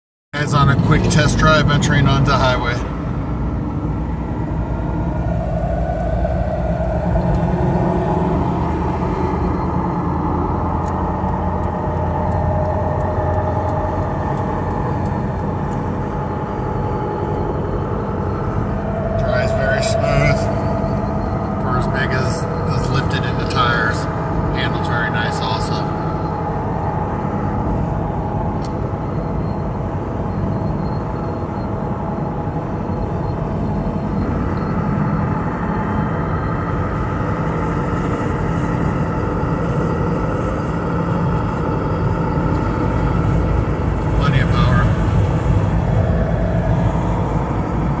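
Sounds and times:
engine hum in car cabin: 0.4 - 48.0.

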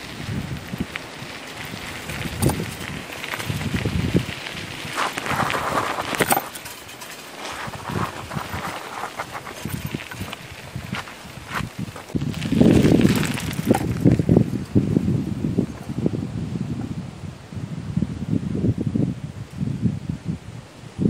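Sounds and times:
footsteps in dry grass and gravel: 0.0 - 15.0.

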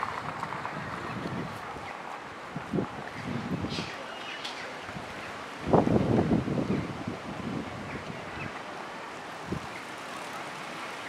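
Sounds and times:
wind buffeting microphone: 0.0 - 8.6.

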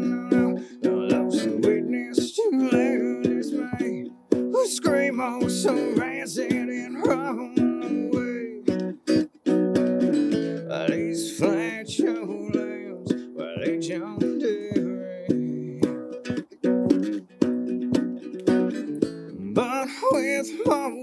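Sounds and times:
plucked string instrument melody: 0.0 - 21.0.

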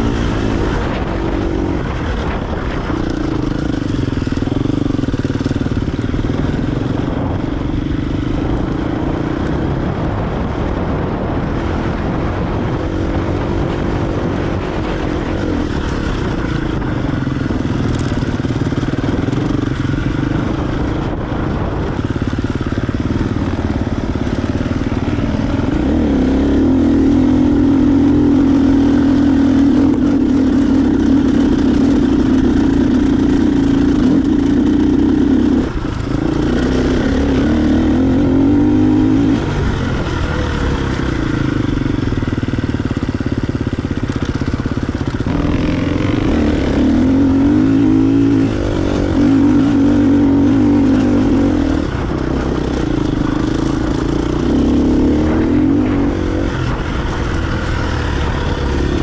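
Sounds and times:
motorcycle engine running hard: 0.0 - 59.0.

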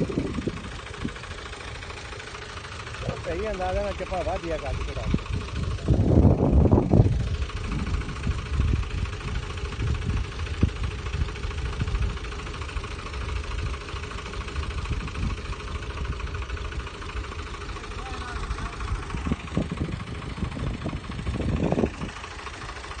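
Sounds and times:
tractor engine running under load: 0.0 - 23.0.

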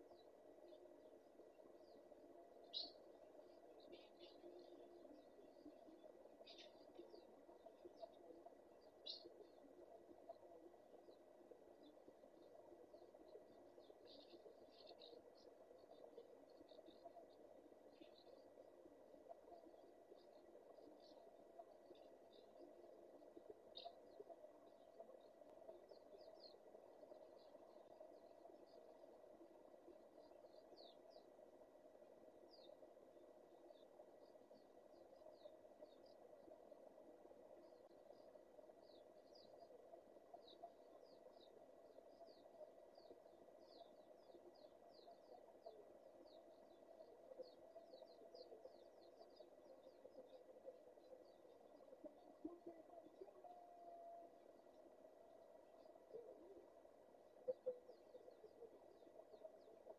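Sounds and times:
thin steady tone: 0.0 - 59.9.

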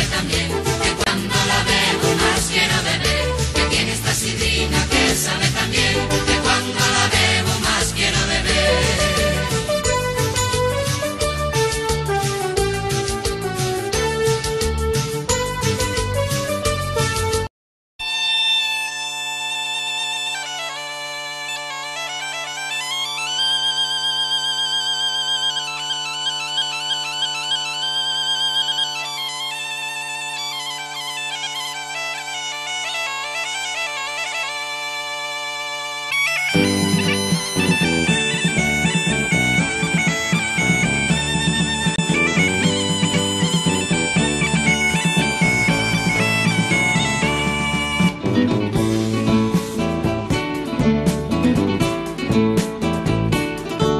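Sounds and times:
full band playing: 0.0 - 17.5, 36.3 - 53.9
bagpipe melody over drone: 18.0 - 48.2.

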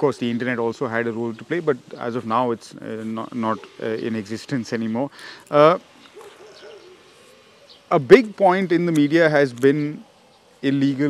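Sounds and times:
faint bird hooting call: 0.0 - 8.4, 9.0 - 11.0.

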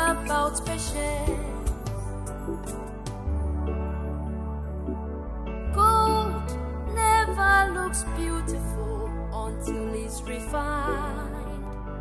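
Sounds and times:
person singing: 0.0 - 1.9, 5.7 - 11.8
song with low chords and melody: 0.0 - 12.0.

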